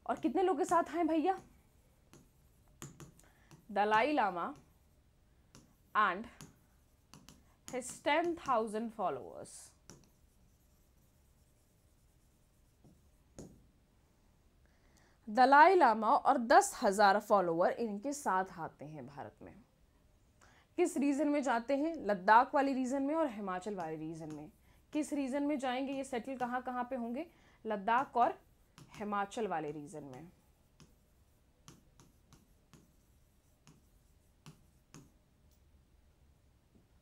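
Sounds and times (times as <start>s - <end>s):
person speaking: 0.0s - 1.8s, 3.5s - 4.7s, 7.7s - 11.6s, 20.8s - 31.0s
marker strokes on board: 0.0s - 13.8s, 21.7s - 35.6s
stylus tapping touchscreen: 0.1s - 4.8s, 5.5s - 9.0s, 9.7s - 13.8s, 23.6s - 25.2s, 25.8s - 26.8s, 28.0s - 35.6s.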